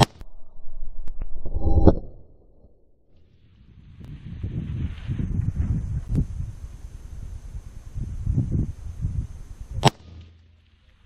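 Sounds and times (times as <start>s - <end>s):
wind buffeting microphone: 3.5s - 9.9s
rifle shot: 9.8s - 10.4s.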